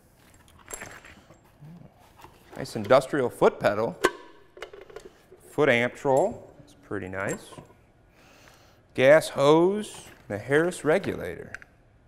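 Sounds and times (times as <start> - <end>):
cable handling clicks and rustles: 0.2 - 3.2, 9.7 - 11.8.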